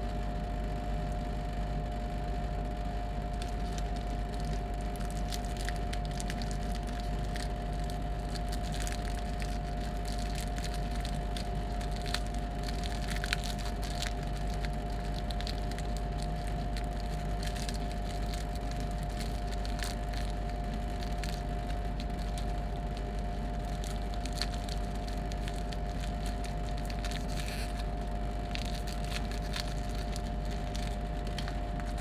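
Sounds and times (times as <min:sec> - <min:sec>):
steady background hum: 0:00.0 - 0:32.0
foil wrapper crinkling: 0:03.1 - 0:32.0.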